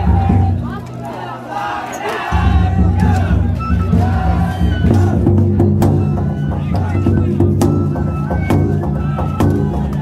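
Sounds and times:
taiko drum beating: 0.0 - 0.8, 2.3 - 10.0
crowd shouting: 0.0 - 5.8.

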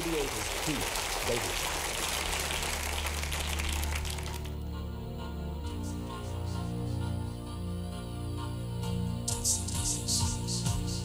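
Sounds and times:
audience applauding: 0.0 - 4.6.

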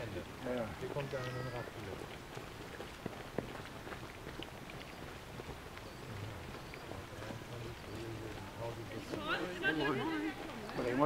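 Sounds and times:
footsteps on gravel: 0.9 - 11.0.

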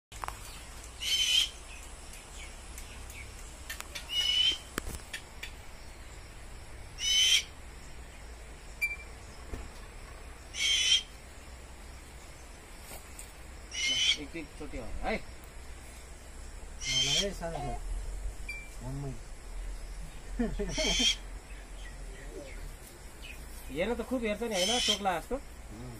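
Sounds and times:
owl screeching calls: 1.0 - 1.5, 4.1 - 4.7, 7.0 - 7.6, 10.5 - 11.1, 13.7 - 14.4, 16.8 - 17.6, 20.7 - 21.2, 24.5 - 25.1.

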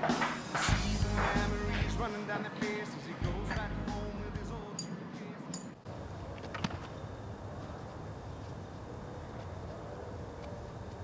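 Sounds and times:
low outdoor rumble: 0.7 - 4.8.

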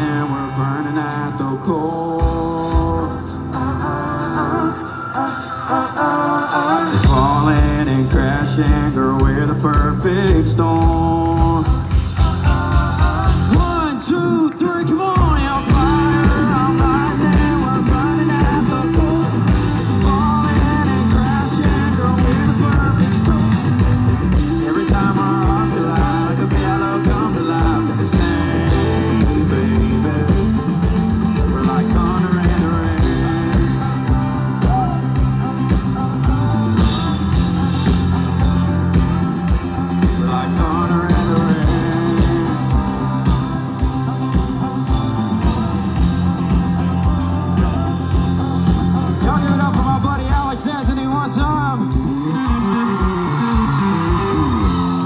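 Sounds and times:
rock band playing: 0.0 - 55.0.

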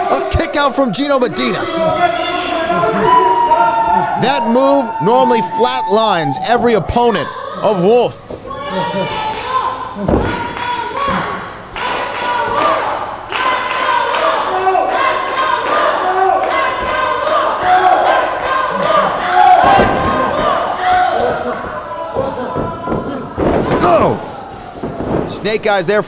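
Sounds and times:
people shouting: 0.0 - 25.3.

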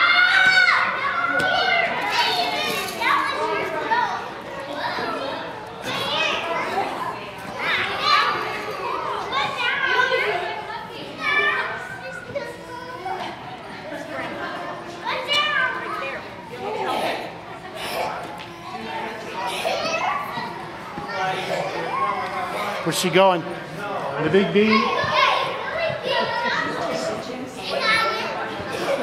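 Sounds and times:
children chattering and squealing: 0.0 - 29.0.

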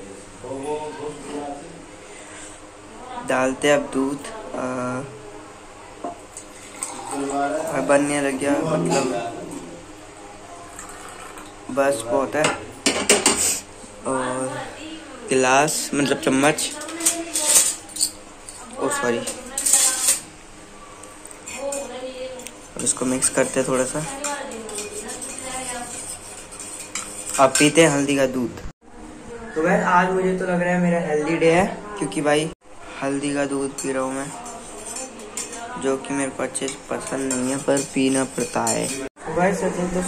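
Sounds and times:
spoon scraping and clinking on steel: 16.0 - 20.3, 22.7 - 28.0, 33.8 - 35.7, 36.6 - 39.1.

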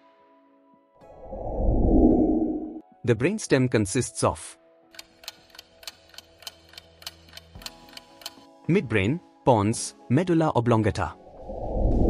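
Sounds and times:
clock ticking: 5.0 - 8.4.

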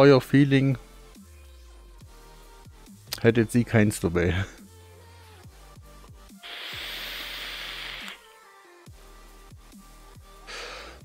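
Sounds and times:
airy breath hiss: 6.3 - 8.4, 10.4 - 11.0.

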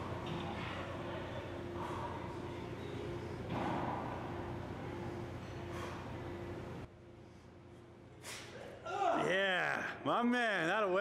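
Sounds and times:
low gym hum: 0.0 - 11.0.

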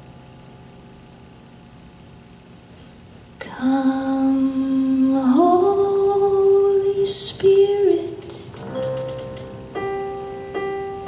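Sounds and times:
low hiss: 0.0 - 11.0
electric keyboard chord: 8.6 - 11.0.

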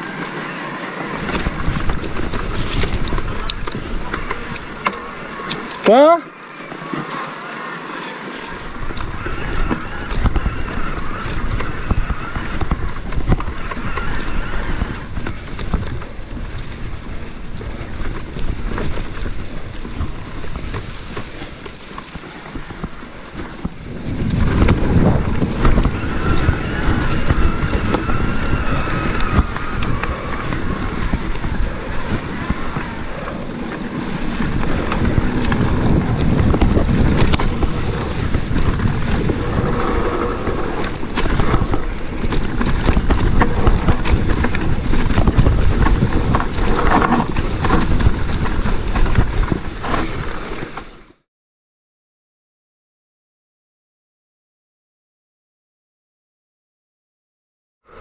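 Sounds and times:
wind buffeting microphone: 0.0 - 5.7, 8.5 - 51.0
bike rattle and tyre noise: 0.0 - 51.2.

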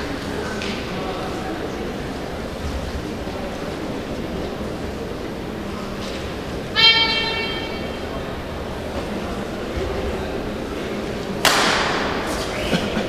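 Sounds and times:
murmur of spectators: 0.0 - 13.0.

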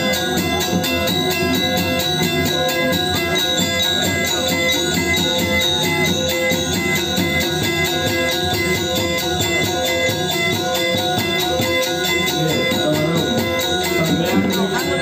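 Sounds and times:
gamelan metallophones ringing: 0.0 - 15.0.

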